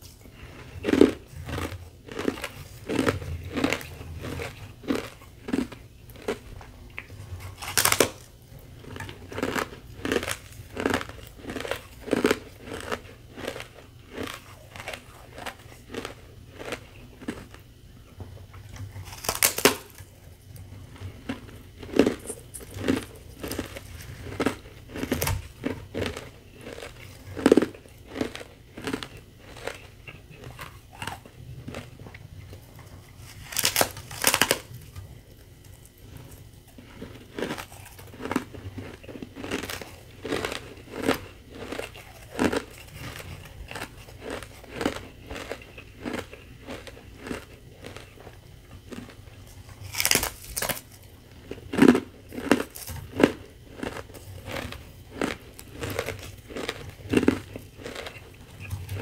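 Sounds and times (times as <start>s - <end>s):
chewing crunches: 0.0s - 59.0s.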